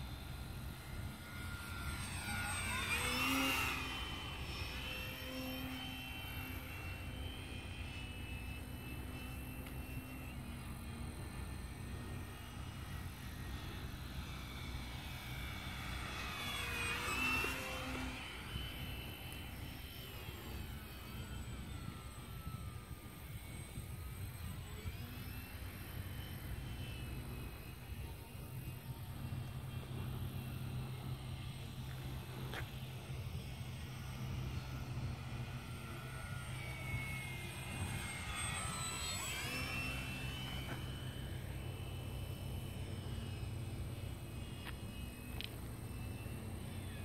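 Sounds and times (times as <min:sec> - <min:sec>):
model plane motor whine: 0:00.0 - 0:47.0.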